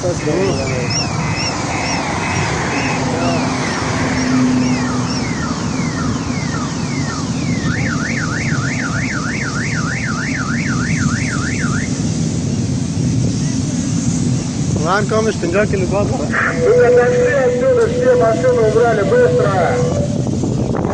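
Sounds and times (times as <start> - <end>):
car alarm chirping and warbling: 0.0 - 12.7, 16.3 - 20.3
steady low rumble: 0.0 - 20.9.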